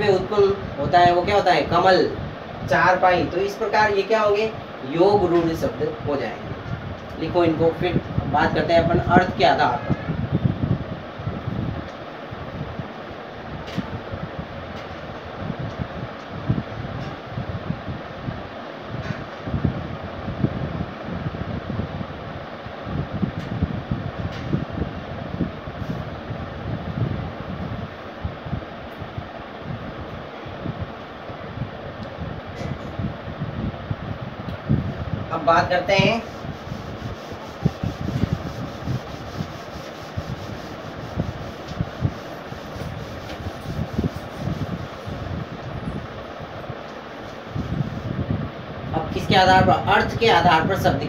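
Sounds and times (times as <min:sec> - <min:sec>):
steady rushing noise: 0:00.0 - 0:51.0.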